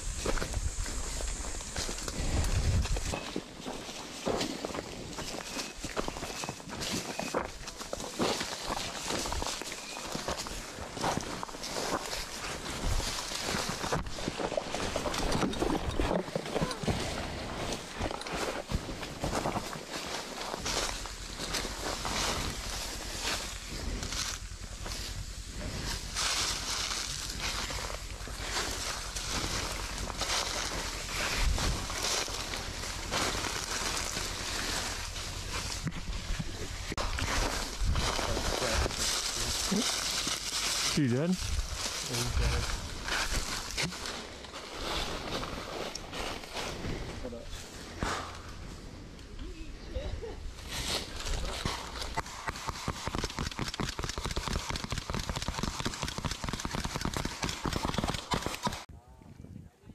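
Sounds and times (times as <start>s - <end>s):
footsteps crunching dry leaves: 0.0s - 15.4s, 16.6s - 47.9s
brush rustling: 0.0s - 58.9s.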